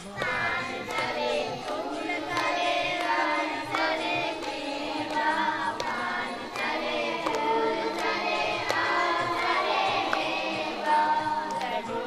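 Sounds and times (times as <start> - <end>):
voices singing together: 0.0 - 12.0.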